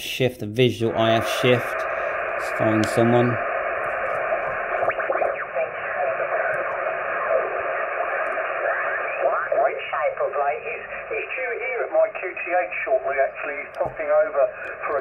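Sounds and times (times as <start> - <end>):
radio band hiss: 0.0 - 15.0
radio voices sliding in pitch: 0.8 - 15.0.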